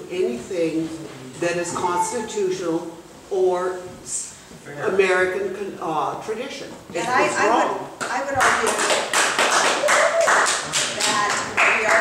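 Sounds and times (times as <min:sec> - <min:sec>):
people clapping: 0:08.0 - 0:12.0.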